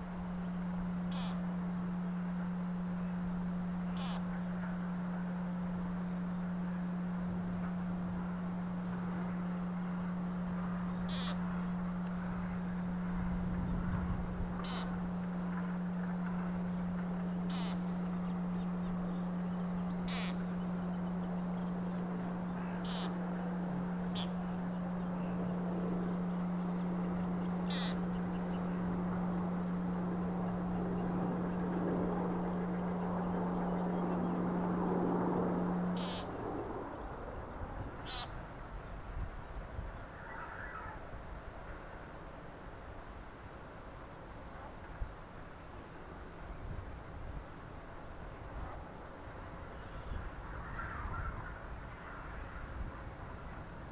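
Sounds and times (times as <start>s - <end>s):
steady low hum: 0.0s - 53.9s
frog distress call: 1.0s - 2.4s, 3.4s - 4.5s, 9.5s - 13.0s, 14.5s - 16.0s, 17.2s - 31.6s, 35.8s - 36.4s, 38.0s - 38.4s, 40.1s - 41.1s.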